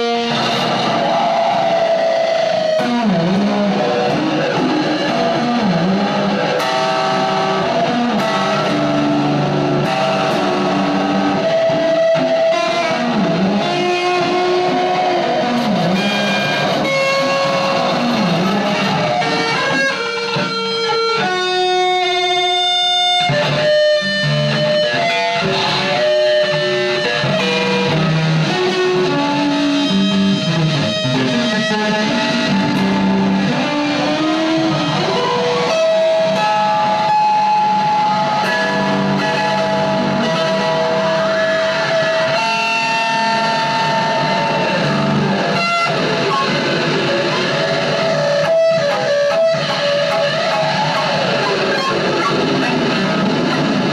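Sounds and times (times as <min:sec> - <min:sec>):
electric guitar noise drone: 0:00.0 - 0:53.9.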